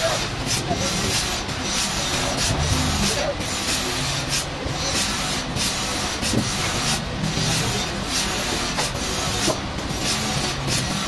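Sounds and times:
forklift engine running: 2.0s - 4.7s.

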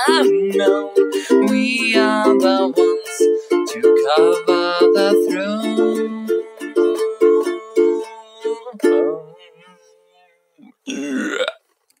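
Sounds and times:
ukulele chord: 0.0s - 10.0s
loud burp: 10.6s - 11.6s.

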